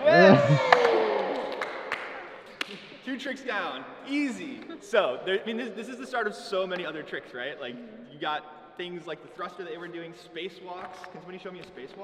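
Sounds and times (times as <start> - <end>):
small group cheering and laughing: 0.0 - 2.9.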